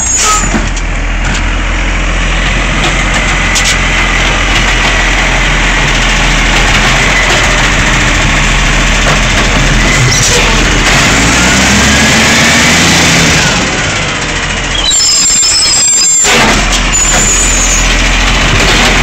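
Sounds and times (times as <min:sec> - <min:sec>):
garbage truck diesel engine: 0:00.0 - 0:19.0.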